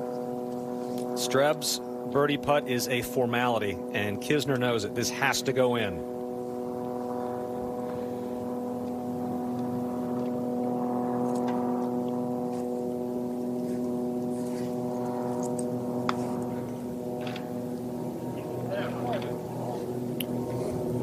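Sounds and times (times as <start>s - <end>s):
steady mechanical drone: 0.0s - 21.0s.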